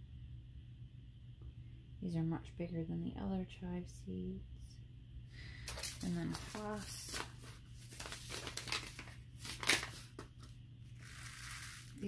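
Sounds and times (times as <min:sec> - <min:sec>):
paper packet crinkling: 0:05.7 - 0:12.0
seeds shaken out hissing: 0:11.0 - 0:12.0.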